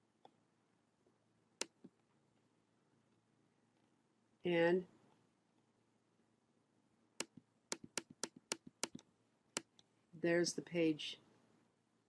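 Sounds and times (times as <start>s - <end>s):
computer mouse button clicks: 7.2s - 9.0s.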